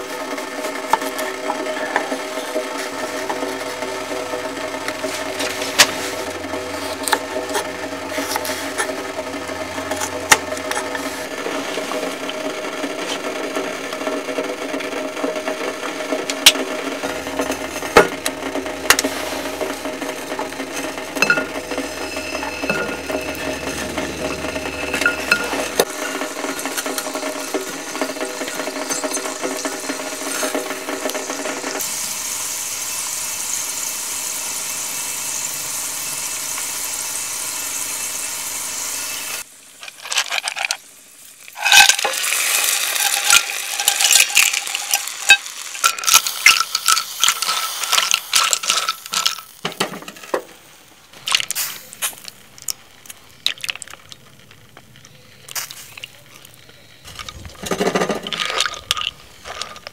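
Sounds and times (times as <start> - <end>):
steady hum: 0.0 - 32.2
garlic sizzling in hot oil: 0.0 - 54.4, 55.6 - 56.2.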